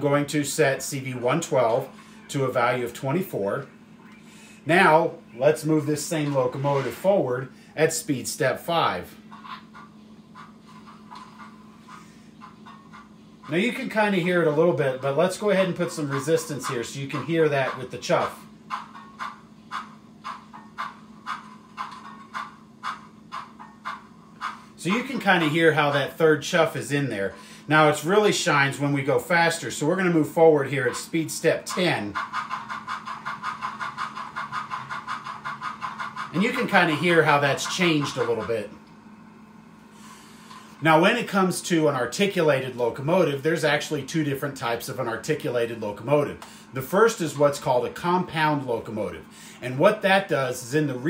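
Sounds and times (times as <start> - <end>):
soft steam locomotive chuffs: 0.0 - 51.0
steady low hum: 0.0 - 51.0.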